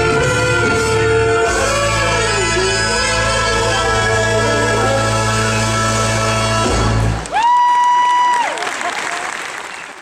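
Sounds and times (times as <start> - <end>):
live band playing: 0.0 - 7.3
audience applause: 7.2 - 10.0.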